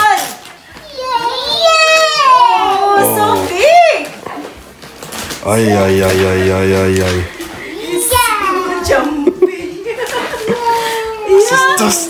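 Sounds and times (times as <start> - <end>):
children's excited voices: 7.6 - 9.1.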